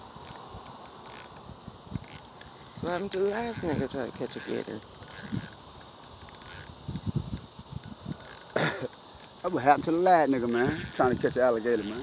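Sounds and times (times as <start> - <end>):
fishing reel gears clicking: 0.2 - 9.6, 10.4 - 12.0.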